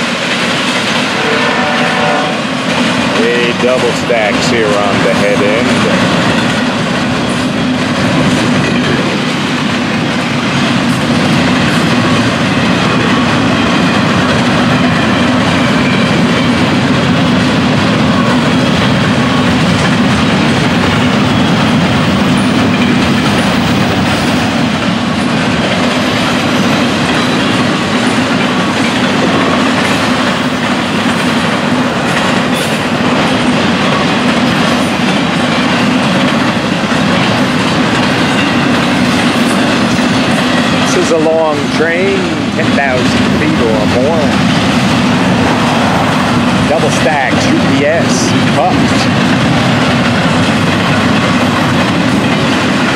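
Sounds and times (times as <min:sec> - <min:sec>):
freight train wheels on rails: 0:00.0 - 0:52.9
rattling freight cars: 0:00.0 - 0:52.9.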